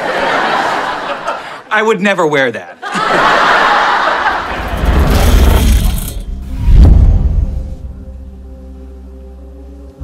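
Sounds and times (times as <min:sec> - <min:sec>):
deep boom: 0:04.3 - 0:08.2
loud rushing whoosh: 0:04.4 - 0:08.0.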